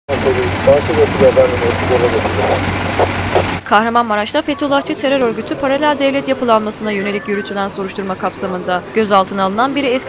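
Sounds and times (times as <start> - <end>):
people's voices: 0.0 - 10.0
idling minibus engine hum: 0.1 - 10.0.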